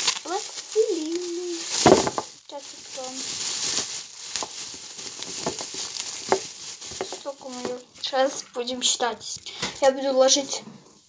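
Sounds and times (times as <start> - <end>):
plastic bags crinkling: 0.0 - 10.2.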